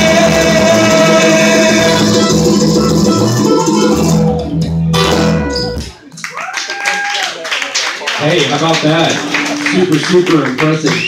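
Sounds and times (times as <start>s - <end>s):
mandolin and acoustic guitars: 0.0s - 6.0s, 9.1s - 10.8s.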